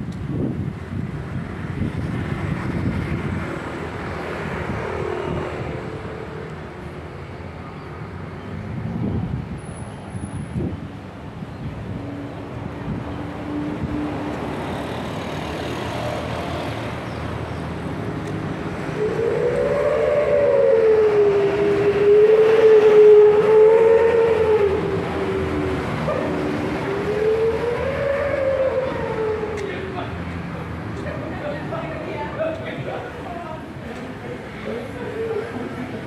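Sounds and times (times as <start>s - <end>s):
roadside traffic: 0.0s - 36.0s.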